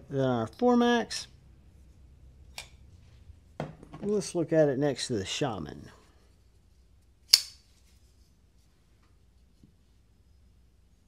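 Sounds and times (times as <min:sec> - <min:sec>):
folding knife metallic click: 0:07.3 - 0:07.6.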